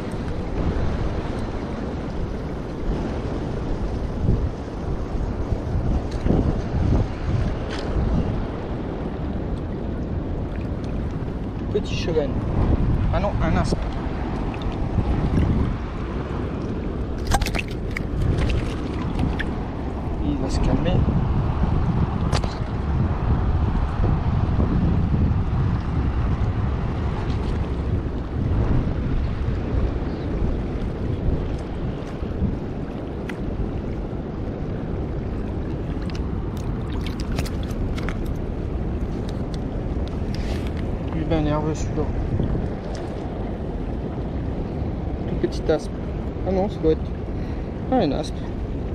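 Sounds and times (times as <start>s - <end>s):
wind buffeting microphone: 0.0s - 48.9s.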